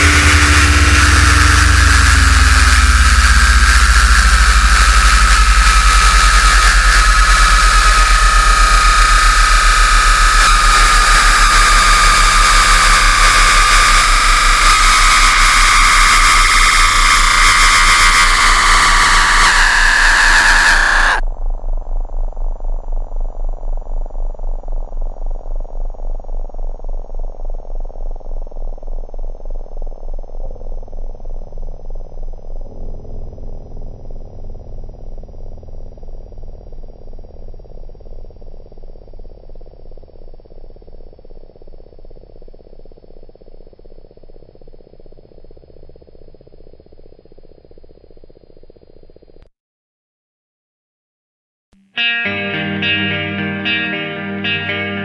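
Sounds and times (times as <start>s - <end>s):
muffled pulsing low sound: 0.0s - 20.6s, 21.2s - 49.4s
harsh noise wall: 0.0s - 21.2s
high ringing tone: 0.0s - 21.2s, 52.0s - 55.0s.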